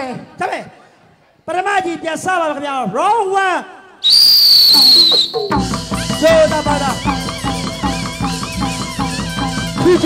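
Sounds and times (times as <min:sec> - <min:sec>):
shrill whistle: 0:04.0 - 0:05.6
ensemble playing drums and percussion: 0:04.7 - 0:10.0.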